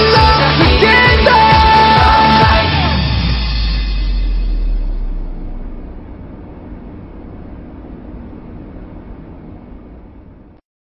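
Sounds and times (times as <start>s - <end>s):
low steady rumbling noise: 3.3s - 10.6s.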